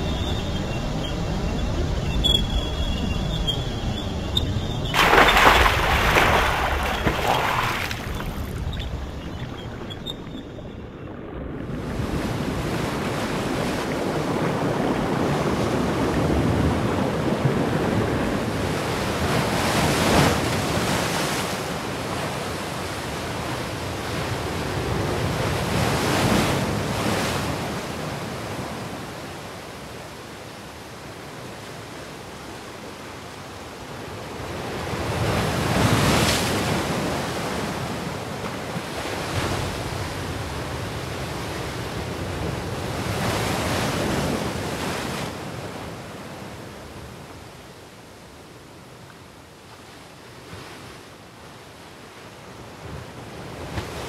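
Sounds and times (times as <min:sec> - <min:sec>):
rushing water surges: 0:00.0 - 0:18.2.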